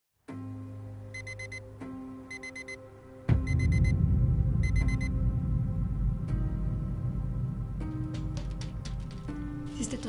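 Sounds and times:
digital alarm clock beeping: 0:01.1 - 0:01.6, 0:02.3 - 0:02.8, 0:03.4 - 0:04.0, 0:04.6 - 0:05.1
loud deep boom: 0:03.3 - 0:07.8
low rumble: 0:03.3 - 0:08.2.

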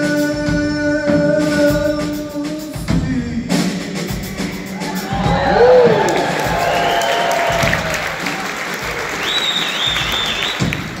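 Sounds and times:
audience applauding and cheering: 0:04.7 - 0:11.0.

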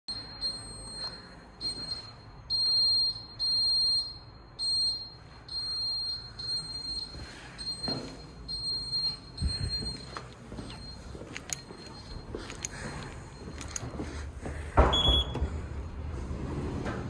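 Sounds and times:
fire alarm panel buzzer beeping: 0:00.1 - 0:14.3, 0:14.9 - 0:15.5.

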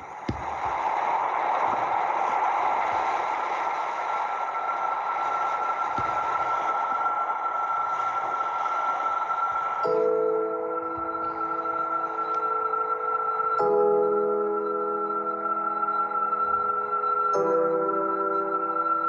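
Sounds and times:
steady rushing noise: 0:00.0 - 0:19.0.

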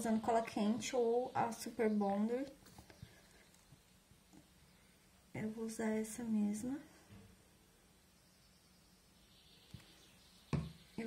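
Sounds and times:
soft thud: 0:10.5 - 0:10.8.

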